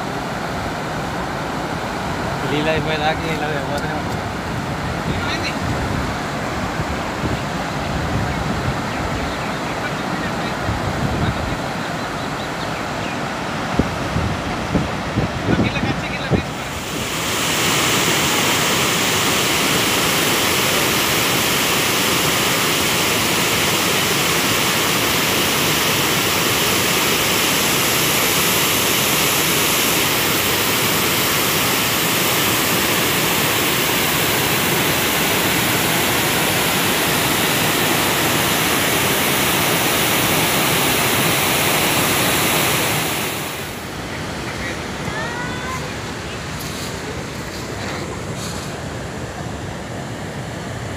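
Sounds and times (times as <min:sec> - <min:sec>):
water rushing over spillway: 0:00.0 - 0:50.9.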